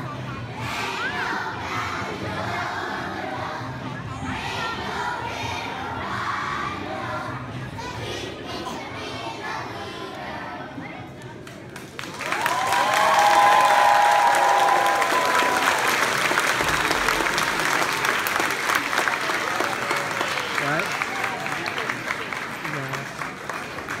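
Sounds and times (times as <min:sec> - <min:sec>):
audience applauding: 0:11.8 - 0:24.0
high-pitched whooping cheer: 0:12.3 - 0:15.9.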